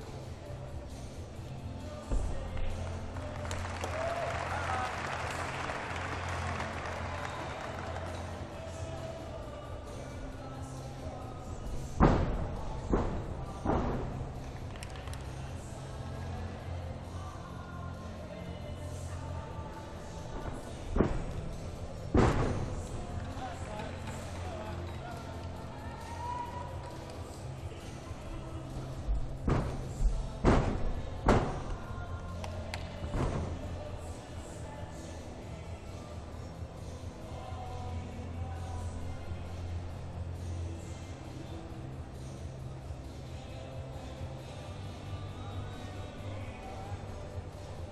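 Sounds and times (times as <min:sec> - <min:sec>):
crowd applauding: 0:02.8 - 0:08.5.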